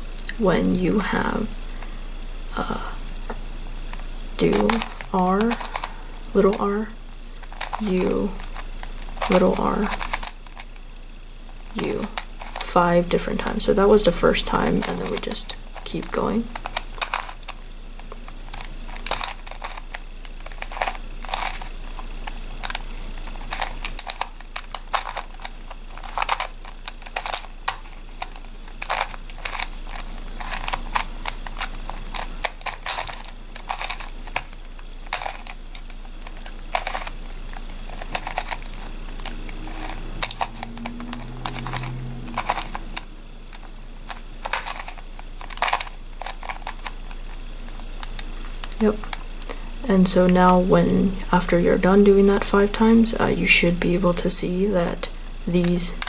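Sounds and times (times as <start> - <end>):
plastic puzzle clicking: 7.4 - 10.8, 14.6 - 47.0.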